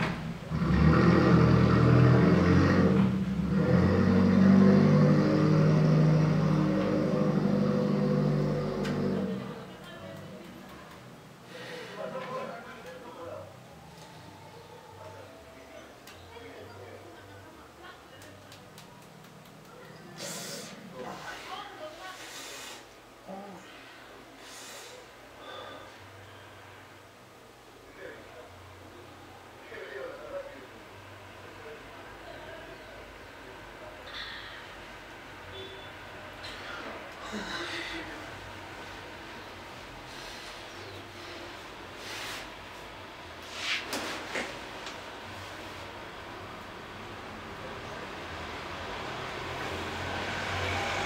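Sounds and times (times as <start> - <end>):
engine running: 0.0 - 10.6.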